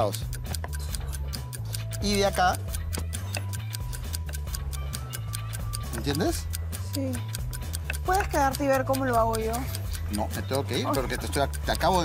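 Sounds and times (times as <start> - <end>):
background music: 0.0 - 12.0
clock-like ticking: 0.0 - 12.0.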